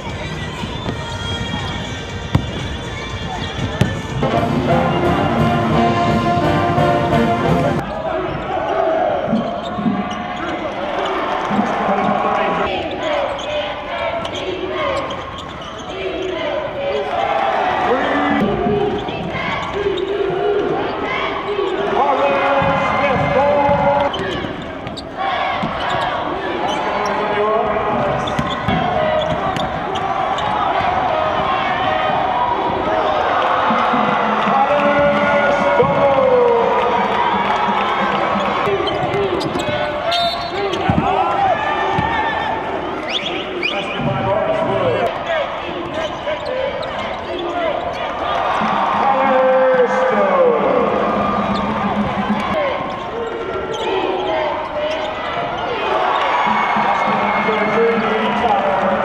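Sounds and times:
basketball dribbling: 0:00.0 - 0:04.2
sneakers squeaking on hardwood: 0:00.0 - 0:04.2, 0:14.2 - 0:16.5, 0:22.6 - 0:32.2, 0:38.2 - 0:44.3
crowd voices din: 0:00.0 - 0:59.0.

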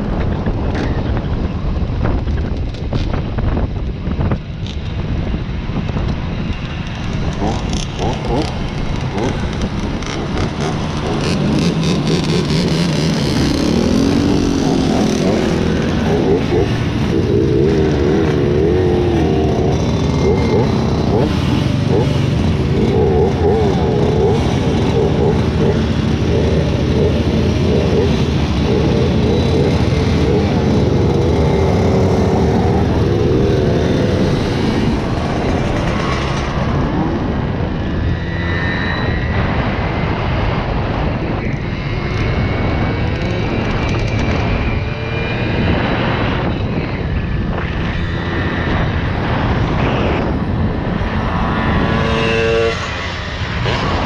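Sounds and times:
moped engines idling and revving: 0:00.0 - 0:54.0
moped accelerating through gears: 0:06.1 - 0:54.0.

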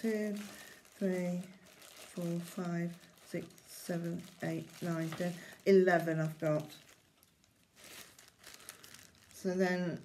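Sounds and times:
plastic bags crinkling: 0:00.0 - 0:10.0.

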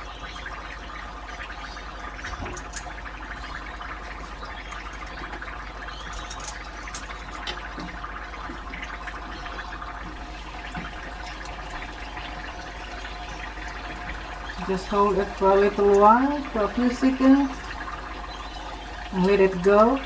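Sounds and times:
food sizzling in hot oil: 0:02.0 - 0:20.0.

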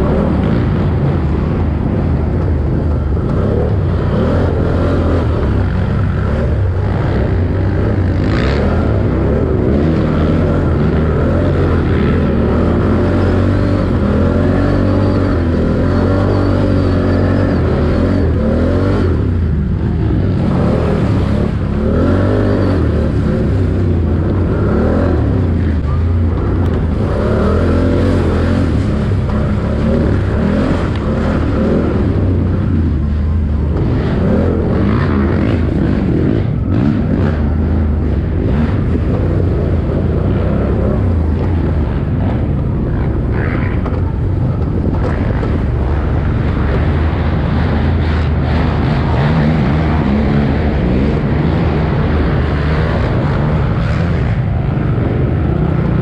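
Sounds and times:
off-road engine revving: 0:00.0 - 0:56.0.

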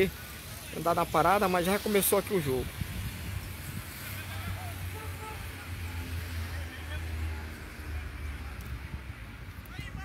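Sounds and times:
distant players shouting: 0:04.1 - 0:06.0.

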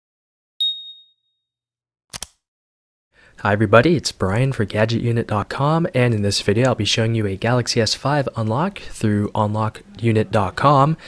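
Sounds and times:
high bright ding: 0:00.6 - 0:01.2.

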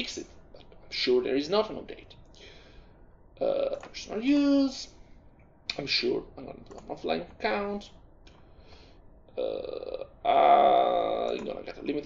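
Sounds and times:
man saying uhh: 0:03.4 - 0:04.2, 0:09.4 - 0:11.6.

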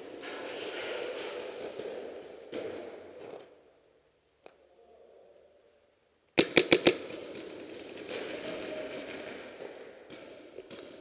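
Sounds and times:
faint noise: 0:00.0 - 0:11.0
paintball marker firing: 0:06.4 - 0:07.7.

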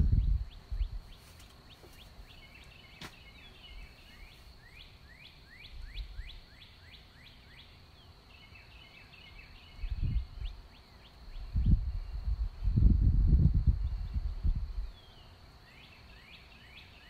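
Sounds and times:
low rumbling bumps on microphone: 0:00.0 - 0:01.2
songbird singing: 0:00.0 - 0:17.0.

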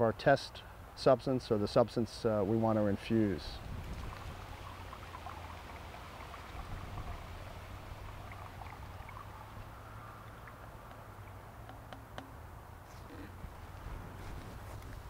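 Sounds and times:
low steady hum: 0:00.0 - 0:15.0
water pouring through funnel: 0:03.2 - 0:11.4.

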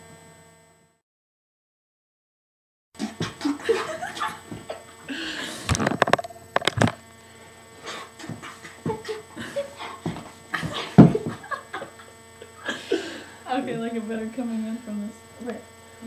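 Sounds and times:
faint steady hum: 0:03.0 - 0:16.0.

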